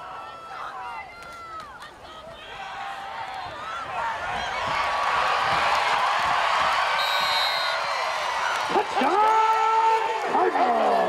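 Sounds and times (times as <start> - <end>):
football crowd cheering: 0.0 - 11.0.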